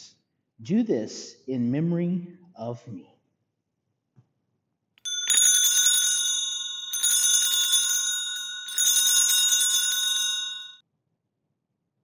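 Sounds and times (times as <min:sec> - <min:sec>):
altar bells jangling: 0:05.0 - 0:10.8.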